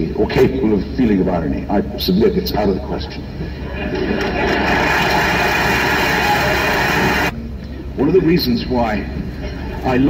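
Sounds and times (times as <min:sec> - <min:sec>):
audience applauding: 0:03.9 - 0:07.3.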